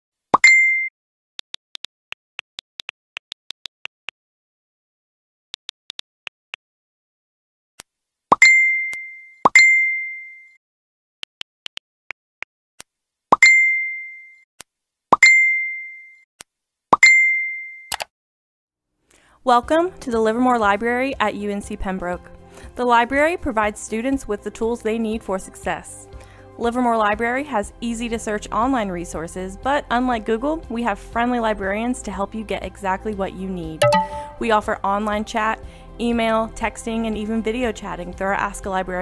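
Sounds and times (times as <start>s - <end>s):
notification pop and ding: 0.4s - 0.9s, 8.3s - 10.6s, 13.4s - 14.4s, 15.2s - 16.1s, 17.0s - 18.1s, 33.8s - 34.5s.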